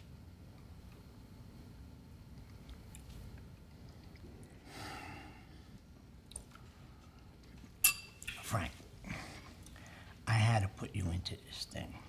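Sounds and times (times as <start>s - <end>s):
metal spoon clinking on bowl: 7.8s - 8.4s
soft breath: 9.0s - 10.2s.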